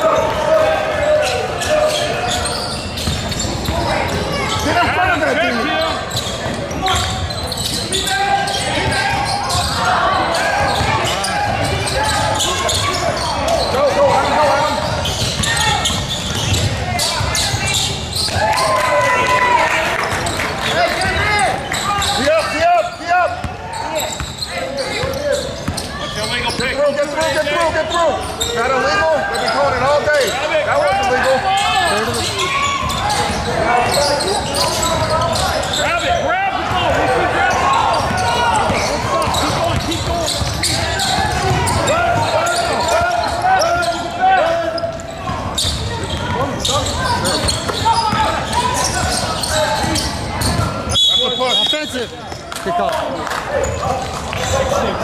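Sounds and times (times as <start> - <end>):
indistinct shouting and chatter: 0.0 - 55.0.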